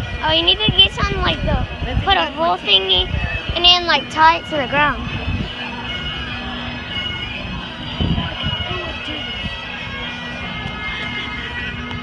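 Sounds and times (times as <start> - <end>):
voices speaking: 0.0 - 11.4
bagpipes playing: 0.0 - 12.0.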